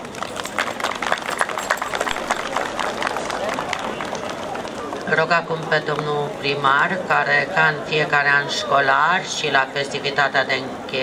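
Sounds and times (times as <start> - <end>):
group of people clapping: 0.0 - 6.1
sharp close hand claps: 0.0 - 6.1.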